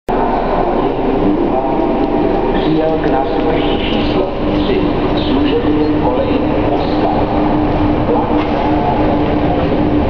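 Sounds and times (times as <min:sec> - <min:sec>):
train running noise: 0:00.1 - 0:10.0.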